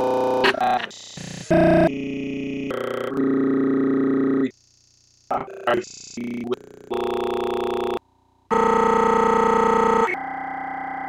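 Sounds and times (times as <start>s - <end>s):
buzzy glitch tone: 0.0s - 4.5s, 5.3s - 8.0s.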